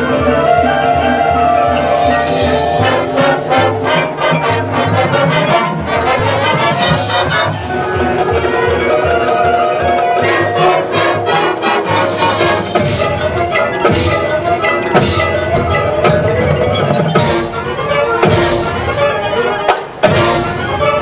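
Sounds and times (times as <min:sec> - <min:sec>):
brass and woodwinds chords: 0:00.0 - 0:21.0
steady drum beat: 0:10.5 - 0:19.0, 0:19.8 - 0:20.7.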